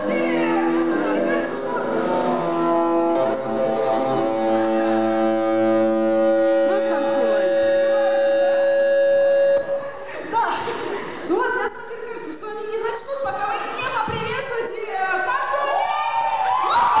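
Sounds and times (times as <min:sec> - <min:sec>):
person's voice: 0:00.0 - 0:02.2, 0:06.7 - 0:08.7
rock band ringing chord: 0:00.0 - 0:09.8.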